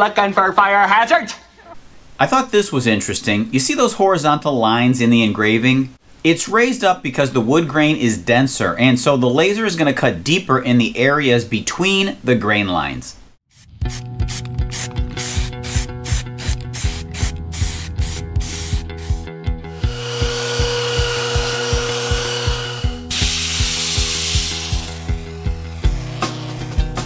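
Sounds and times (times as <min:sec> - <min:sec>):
background music with beat: 0:13.6 - 0:27.0
belt sander on wood: 0:14.8 - 0:27.0.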